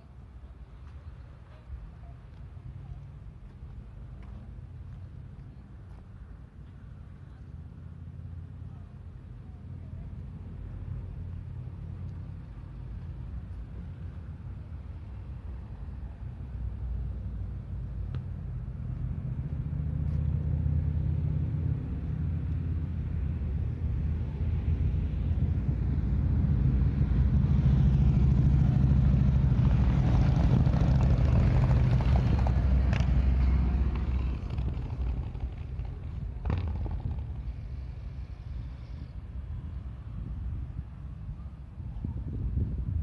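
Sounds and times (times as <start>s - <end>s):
vehicle engines rumbling past: 0.0s - 43.0s.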